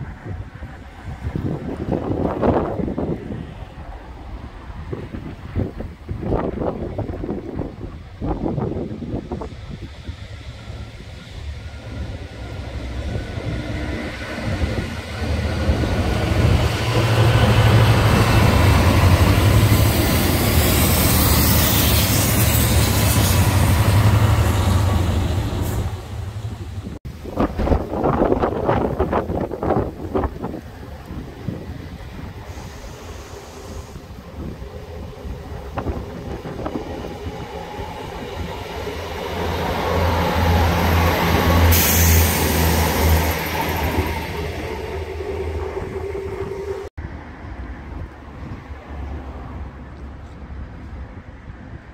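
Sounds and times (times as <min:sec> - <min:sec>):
heavy rail noise: 0:00.0 - 0:51.9
passenger train passing: 0:00.0 - 0:51.9
diesel locomotive engine drumming: 0:05.2 - 0:27.0.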